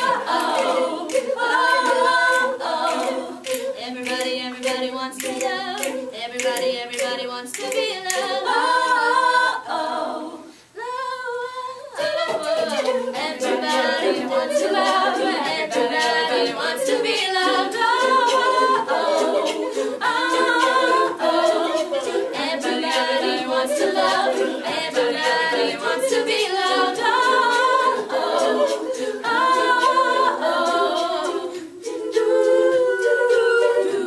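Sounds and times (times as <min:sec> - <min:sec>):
women singing a cappella: 0:00.0 - 0:34.0.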